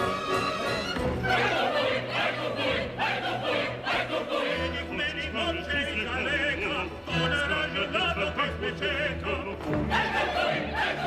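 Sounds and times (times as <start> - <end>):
opera chorus singing: 0.1 - 11.0.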